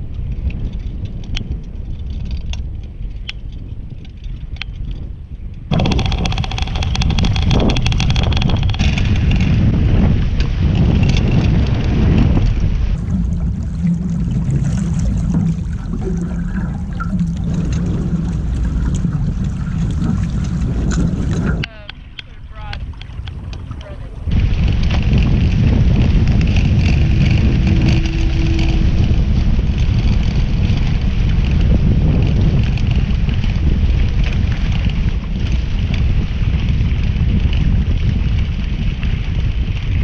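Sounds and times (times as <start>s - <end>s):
wind rumbling on microphone: 0.0s - 40.0s
water rushing along hulls: 5.7s - 40.0s.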